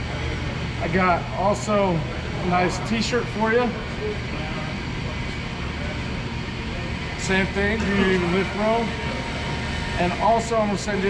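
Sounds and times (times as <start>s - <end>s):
warehouse low rumble: 0.0s - 11.0s.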